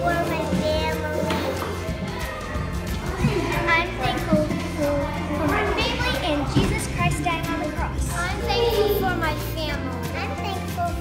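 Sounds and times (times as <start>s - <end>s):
steady bass: 0.0s - 9.8s.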